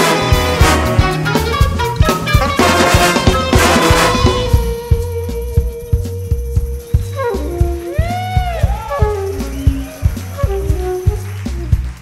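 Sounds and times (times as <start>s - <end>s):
big band jazz-funk music: 0.0s - 12.0s
kick-drum beat: 0.0s - 12.0s.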